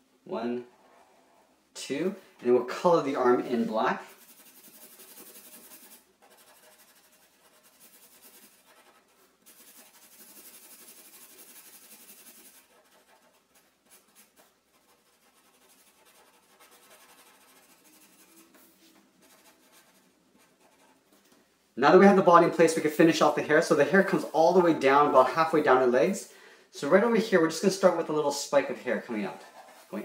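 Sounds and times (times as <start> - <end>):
felt-tip marker scratching on paper: 4.1 - 21.1.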